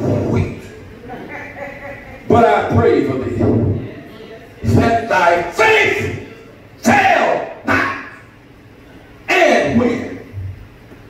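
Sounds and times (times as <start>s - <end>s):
man preaching: 0.0s - 0.8s, 2.2s - 3.8s, 4.6s - 8.4s, 9.2s - 10.3s.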